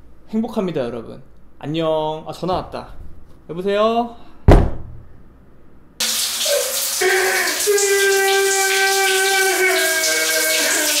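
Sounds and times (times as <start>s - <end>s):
shower water spraying: 6.0s - 11.0s.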